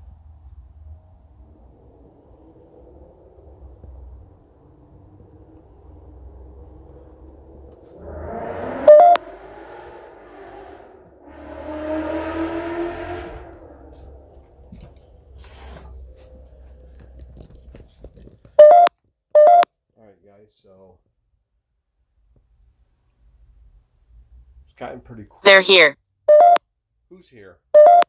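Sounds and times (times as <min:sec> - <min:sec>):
loud electronic beeps: 0:08.6 - 0:09.4, 0:25.5 - 0:26.6
indistinct voice-like sounds: 0:25.5 - 0:25.9.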